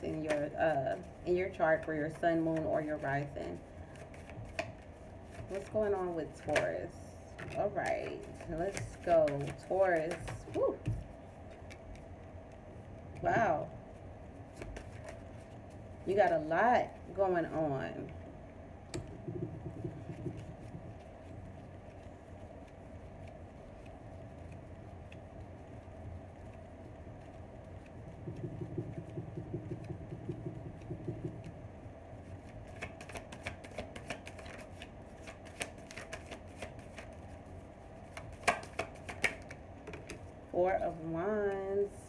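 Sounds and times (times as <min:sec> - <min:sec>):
cards being shuffled: 0:00.0 - 0:06.7, 0:07.4 - 0:13.3, 0:14.4 - 0:17.2, 0:32.2 - 0:40.3
steady low hum: 0:00.0 - 0:42.0
cards snapped on countertop: 0:38.1 - 0:40.1.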